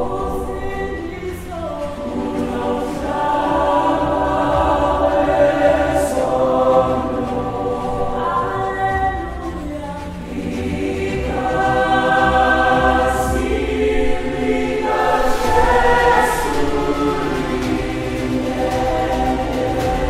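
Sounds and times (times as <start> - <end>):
choir singing in harmony: 0.0 - 20.0.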